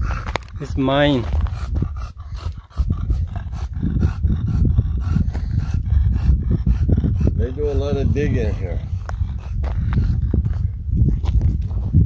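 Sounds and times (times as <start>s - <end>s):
dog panting quickly: 0.0s - 11.0s
low rumble: 0.0s - 12.0s.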